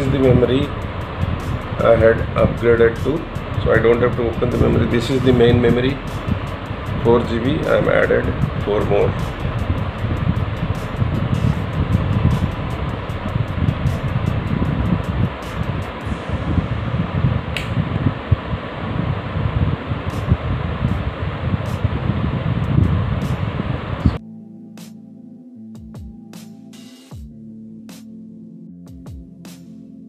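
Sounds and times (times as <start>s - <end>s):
music: 0.0s - 18.0s, 19.0s - 30.0s.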